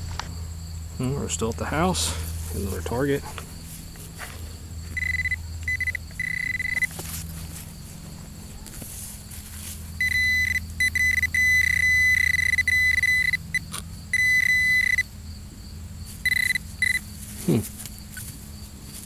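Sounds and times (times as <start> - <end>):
pinpointer high-pitched tone: 5.0 - 7.0, 10.0 - 15.1, 16.2 - 17.0.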